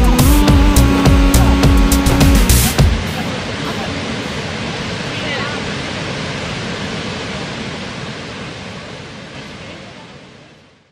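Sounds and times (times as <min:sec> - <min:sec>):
waterfall rushing: 0:00.0 - 0:10.8.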